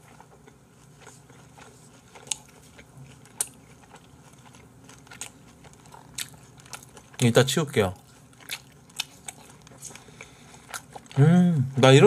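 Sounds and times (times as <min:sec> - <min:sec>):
person chewing food: 0:00.0 - 0:12.0.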